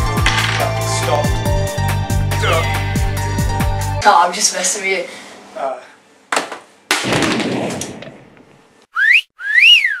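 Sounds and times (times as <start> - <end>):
wolf whistle: 8.9 - 10.0.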